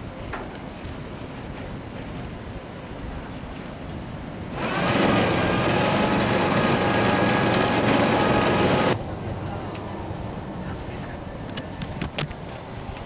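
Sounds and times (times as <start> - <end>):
loud engine whining: 4.5 - 10.5.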